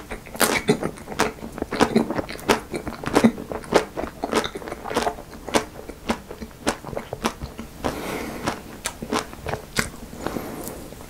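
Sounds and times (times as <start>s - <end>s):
chewing ice cream bar: 0.0s - 11.0s
chocolate shell crunching: 0.1s - 10.0s.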